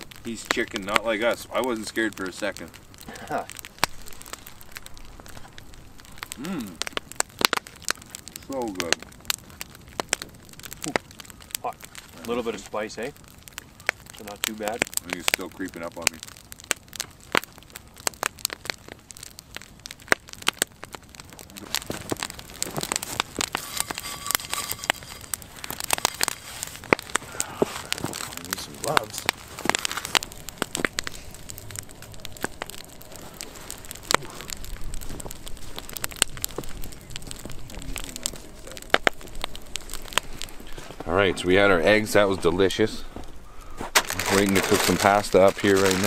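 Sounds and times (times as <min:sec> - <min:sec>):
campfire crackling and popping: 0:00.0 - 0:46.0.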